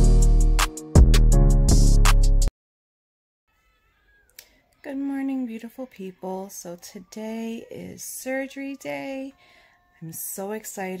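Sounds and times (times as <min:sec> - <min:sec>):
woman speaking: 0:04.8 - 0:11.0.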